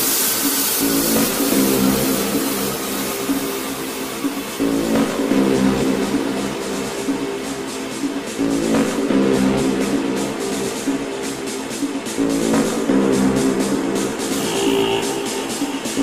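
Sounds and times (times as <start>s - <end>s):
hissy high layer: 0.0s - 4.7s
heavy bass: 0.0s - 16.0s
repeating synth riff: 0.3s - 16.0s.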